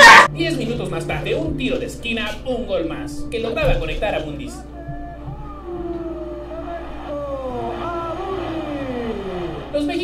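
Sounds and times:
stadium crowd shouting: 0:00.0 - 0:00.3, 0:04.8 - 0:10.0.

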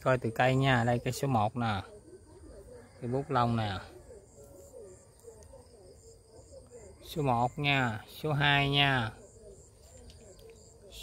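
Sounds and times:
birds calling: 0:00.0 - 0:11.0
high insect chirp: 0:00.0 - 0:11.0.

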